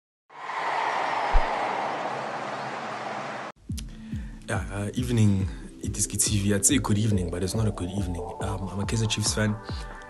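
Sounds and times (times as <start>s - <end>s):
stadium crowd noise: 0.3s - 3.5s.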